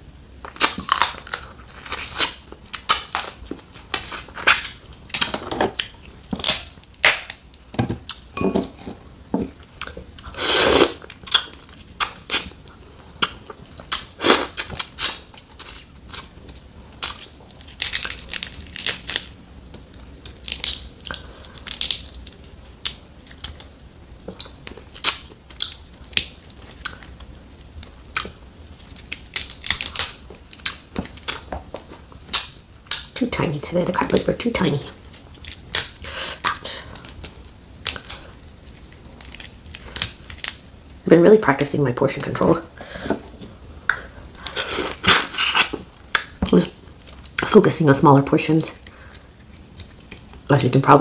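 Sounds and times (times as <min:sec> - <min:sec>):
crab shells cracking: 0:00.5 - 0:08.2, 0:17.0 - 0:23.7, 0:24.3 - 0:27.3, 0:28.1 - 0:33.2, 0:35.1 - 0:40.7.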